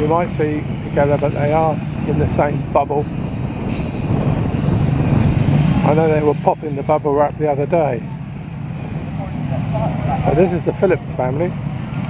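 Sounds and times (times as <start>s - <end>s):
motorcycle engines running: 0.0s - 12.0s
faint distant voices: 5.8s - 11.6s.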